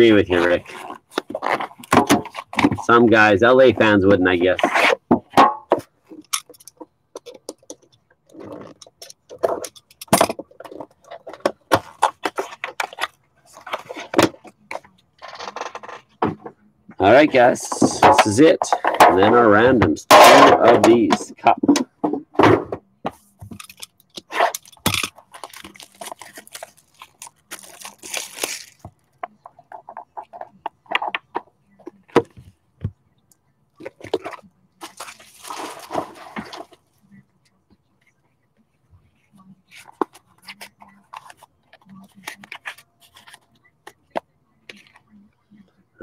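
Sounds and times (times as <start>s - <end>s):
packaging rustling and scraping: 0.2s - 2.9s, 23.5s - 30.4s.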